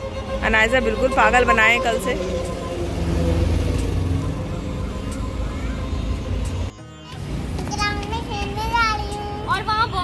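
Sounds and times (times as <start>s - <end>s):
bus engine rumble passing: 0.0s - 10.0s.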